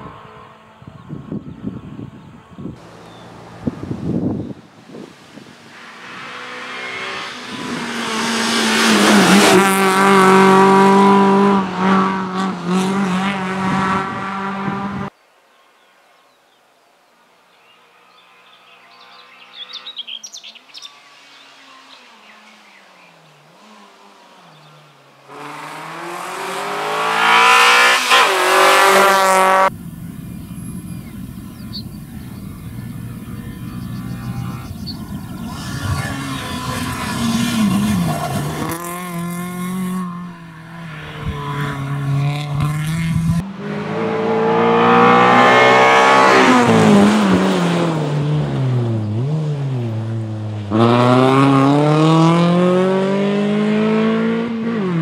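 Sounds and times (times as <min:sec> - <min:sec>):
birds chirping: 0:02.8 - 0:04.8, 0:17.6 - 0:23.4, 0:28.5 - 0:38.8
rally car engine at full throttle: 0:02.8 - 0:15.1, 0:23.5 - 0:55.0.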